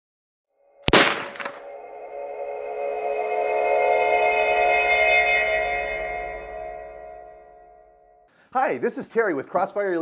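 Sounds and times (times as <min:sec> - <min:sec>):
gunshot bang: 0:00.9 - 0:01.6
ambient music drone: 0:01.5 - 0:08.3.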